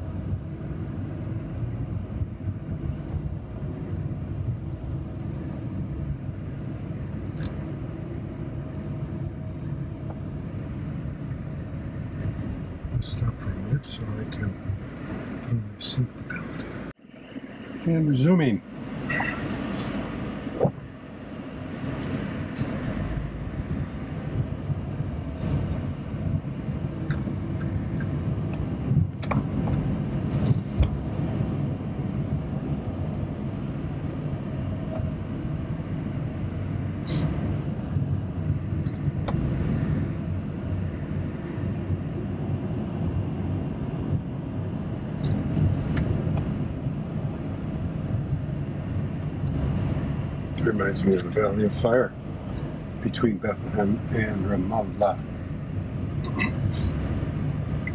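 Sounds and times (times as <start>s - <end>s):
engine and tyre rumble in car: 0.0s - 57.9s.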